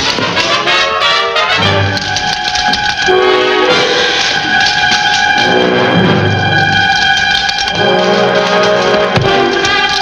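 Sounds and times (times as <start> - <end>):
brass holding long chords: 0.0 - 2.0, 3.0 - 10.0.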